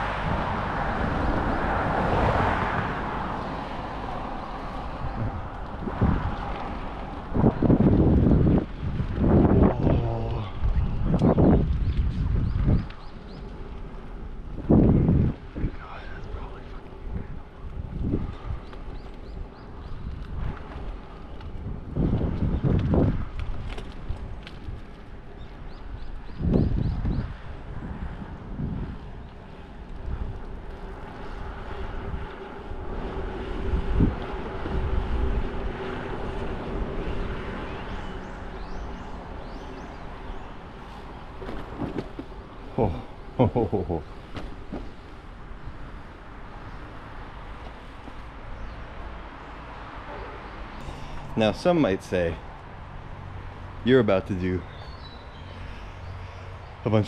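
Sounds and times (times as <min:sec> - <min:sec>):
wind buffeting microphone: 0:00.0 - 0:49.9
road and traffic noise: 0:00.0 - 0:57.0.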